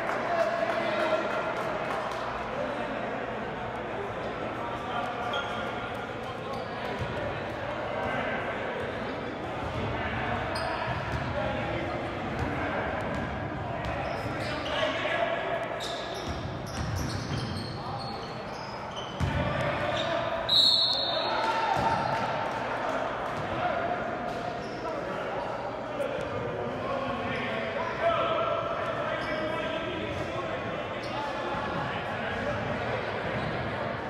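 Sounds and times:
referee's whistle blast: 0:20.5 - 0:21.3.

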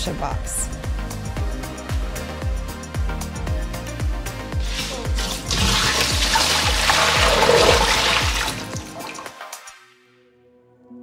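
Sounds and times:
water poured into metal sink: 0:04.6 - 0:09.7.

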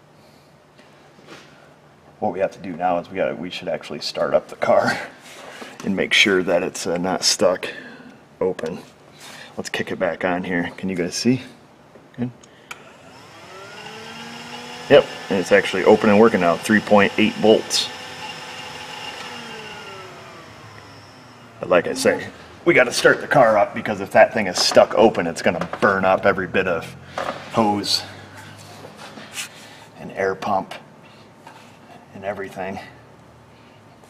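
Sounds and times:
air pump motor whine rising: 0:12.7 - 0:23.7.

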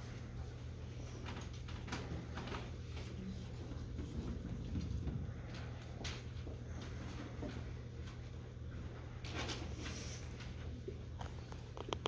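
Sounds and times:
low steady hum: 0:00.0 - 0:12.0
soft knocks and rustles: 0:01.0 - 0:12.0.

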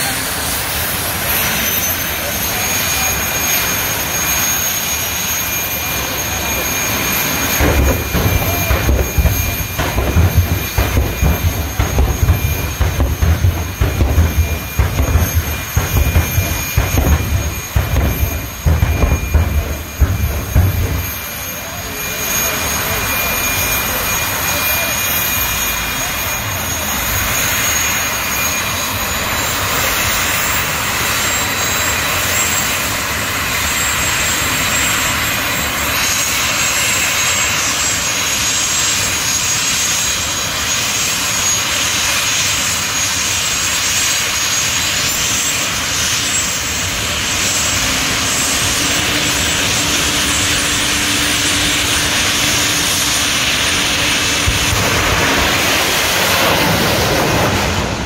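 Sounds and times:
race car engines running: 0:00.0 - 0:31.6, 0:40.2 - 0:58.0.

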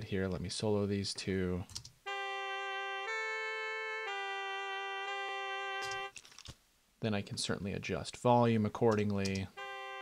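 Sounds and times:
trumpet held notes: 0:02.0 - 0:06.2, 0:09.6 - 0:10.0
alto saxophone held notes: 0:02.1 - 0:06.1, 0:09.6 - 0:10.0.

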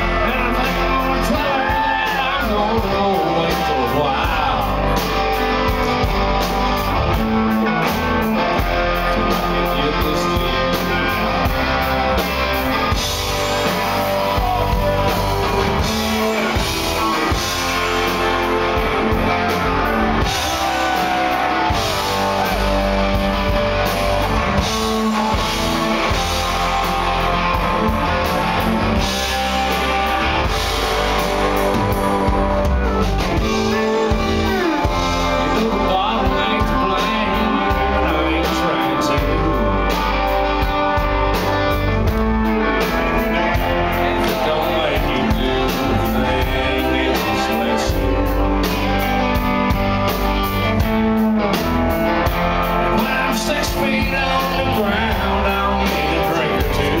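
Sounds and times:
drum kit: 0:00.0 - 0:57.0
electric guitars: 0:00.0 - 0:57.0
man singing: 0:00.0 - 0:57.0.

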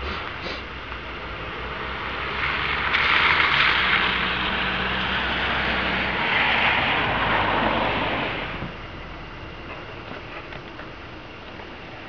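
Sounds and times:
vehicle tyres hissing on wet road: 0:00.0 - 0:08.8.

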